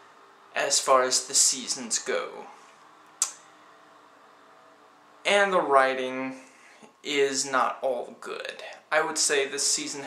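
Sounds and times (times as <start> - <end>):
man's sharp breath: 6.4 - 6.9.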